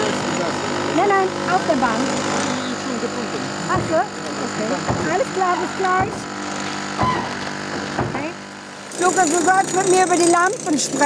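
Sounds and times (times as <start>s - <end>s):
mechanical hum: 0.0s - 11.0s
two people talking: 0.0s - 11.0s.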